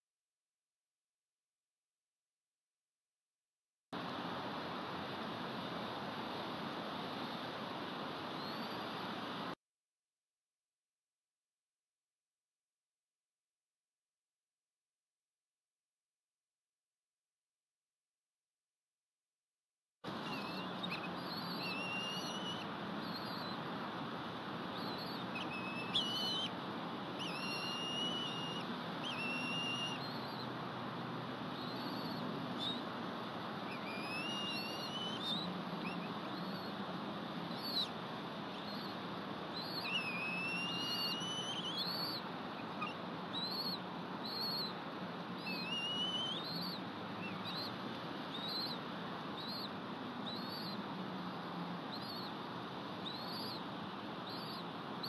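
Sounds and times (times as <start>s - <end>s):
steady background hiss: 4.0s - 9.6s, 20.1s - 55.0s
birds whistling: 20.2s - 23.7s, 24.6s - 30.6s, 31.5s - 32.9s, 33.6s - 36.8s, 37.4s - 44.8s, 45.4s - 48.8s, 49.4s - 50.8s, 51.9s - 52.4s, 53.0s - 53.6s, 54.2s - 54.7s.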